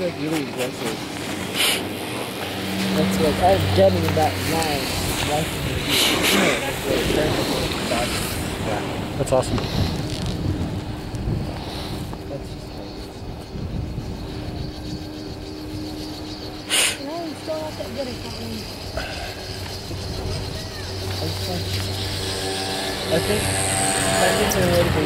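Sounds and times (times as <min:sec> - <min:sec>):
chairlift hum and rumble: 0:00.0 - 0:25.0.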